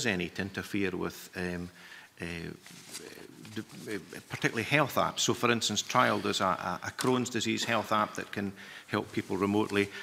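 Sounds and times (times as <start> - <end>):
paper rustling: 2.6 - 4.1.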